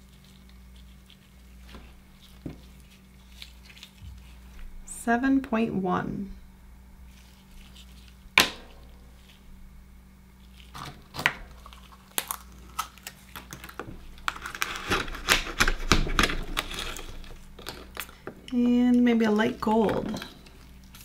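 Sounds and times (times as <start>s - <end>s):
knife scraping oyster shell: 10.5s - 18.1s.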